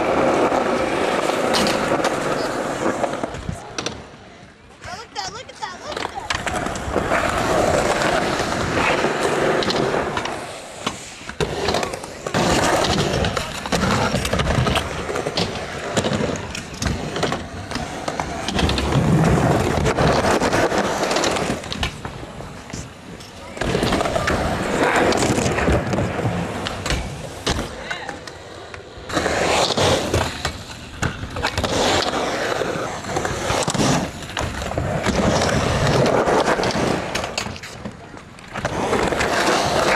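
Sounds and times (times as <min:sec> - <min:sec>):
skateboard clacks: 0:00.0 - 0:39.9
skateboard wheels rolling on concrete: 0:00.0 - 0:39.9.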